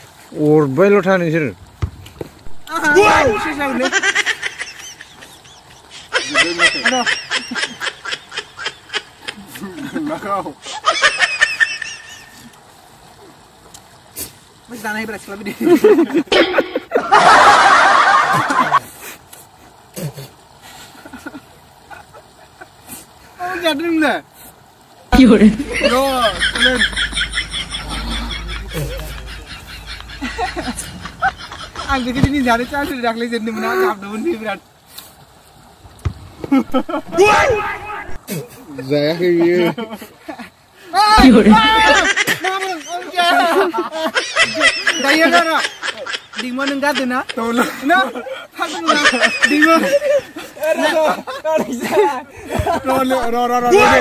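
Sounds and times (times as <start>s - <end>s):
excited speech: 2.6s - 4.0s, 25.1s - 26.9s, 37.1s - 38.2s, 40.9s - 45.7s, 50.7s - 54.0s
men laughing loudly: 2.8s - 12.5s, 15.5s - 18.8s, 20.9s - 22.8s, 25.2s - 33.8s, 36.4s - 54.0s.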